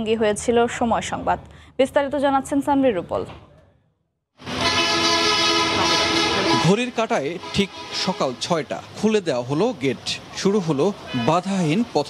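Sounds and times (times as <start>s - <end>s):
steady horn blast: 4.4s - 8.8s.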